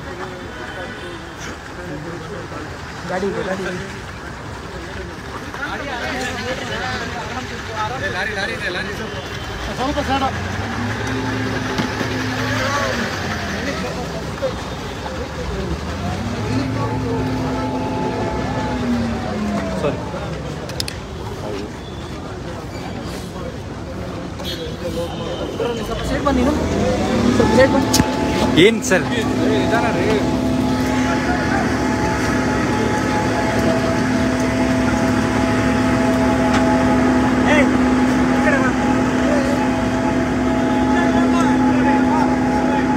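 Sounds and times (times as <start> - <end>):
crowd chatter: 0.0 - 42.9
vehicle engine idling: 0.0 - 42.9.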